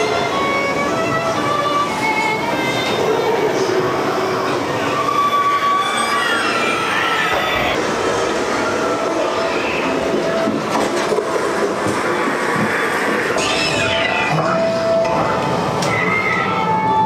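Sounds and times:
high gliding screeching tones: 1.5s - 10.4s.

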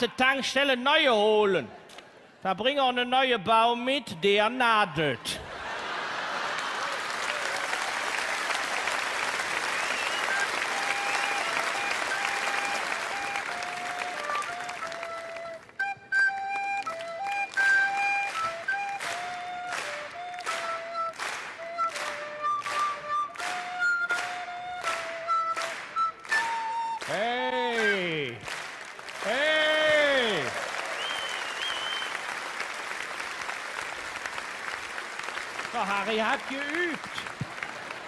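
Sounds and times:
audience applause: 5.4s - 38.0s
rhythmic clapping along: 6.4s - 38.0s
recorder melody: 10.2s - 28.4s.

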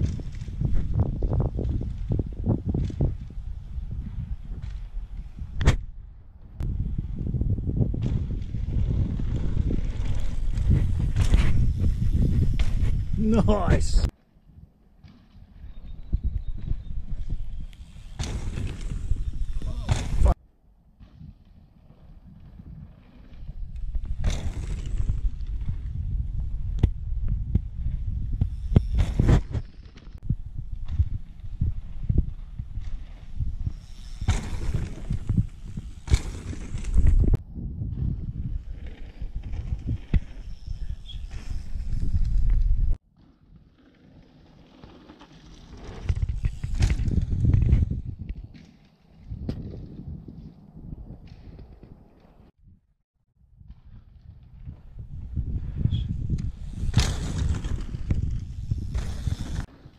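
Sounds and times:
bike tyres rolling on dirt: 0.0s - 52.5s, 53.4s - 59.9s
sharp knocks from landings: 19.8s - 20.4s.

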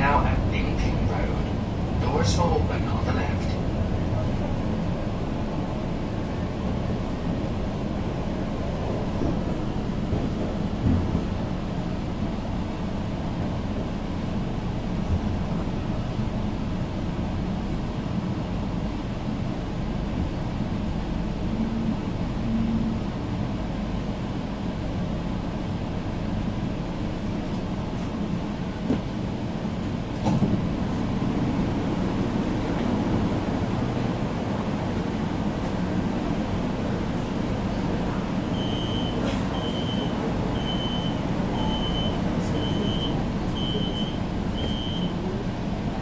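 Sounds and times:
train wheels rumbling on track: 0.0s - 46.0s.

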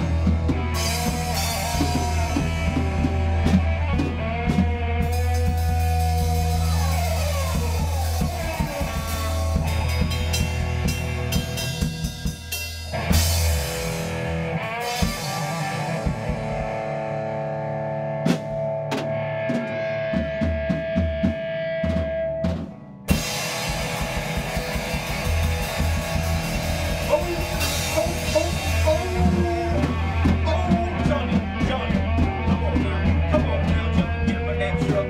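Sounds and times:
bass guitar: 0.0s - 35.0s
drum kit playing: 0.0s - 35.0s
electric guitar: 0.0s - 35.0s.

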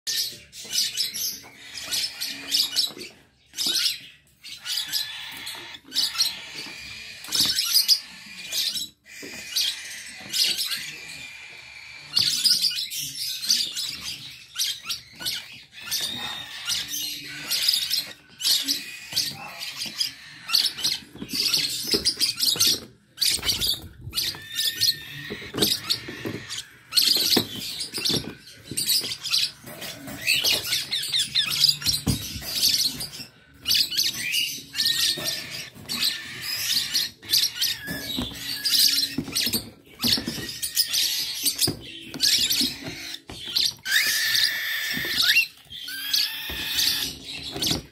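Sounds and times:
small birds chirping: 0.0s - 47.9s.

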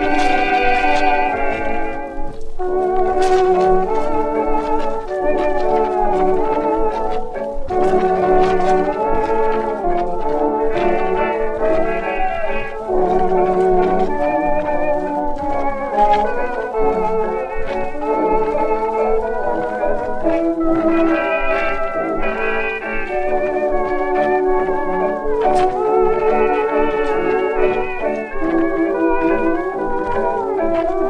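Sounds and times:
dance orchestra playing a waltz: 0.0s - 31.0s.

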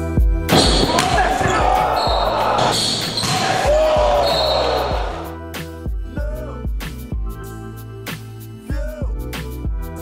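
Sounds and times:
shoe squeaks on court: 0.6s - 3.6s
voices and shouts echoing: 0.8s - 5.4s.

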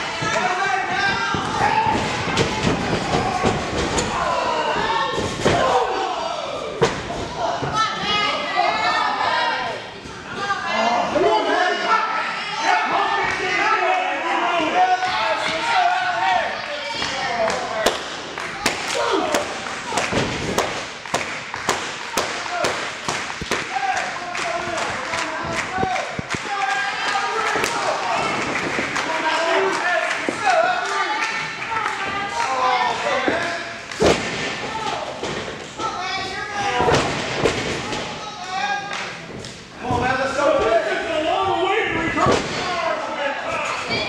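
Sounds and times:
people shouting: 0.0s - 9.8s, 18.6s - 20.4s.

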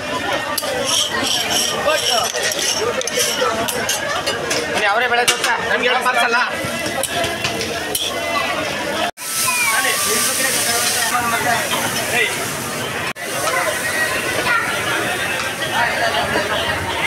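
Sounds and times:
voices chattering: 0.0s - 17.0s
griddle being scraped: 0.6s - 3.8s
hot griddle hissing: 9.2s - 16.2s.

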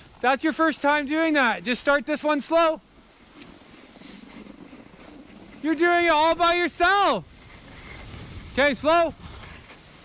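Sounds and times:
skis sliding over snow: 0.0s - 10.0s.

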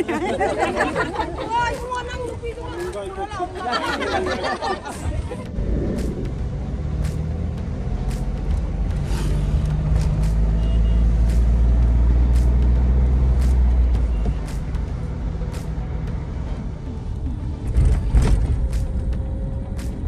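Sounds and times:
music with light beat: 0.0s - 20.0s
engine and tyre rumble: 5.1s - 20.0s.

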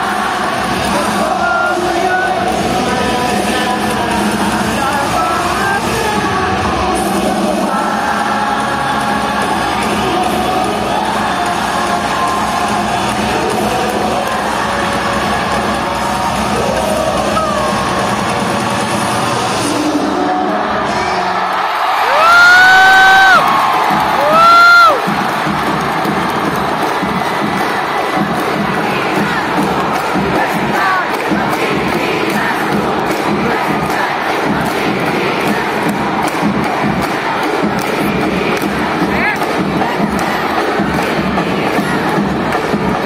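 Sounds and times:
crowd cheering and shouting: 0.0s - 43.0s.

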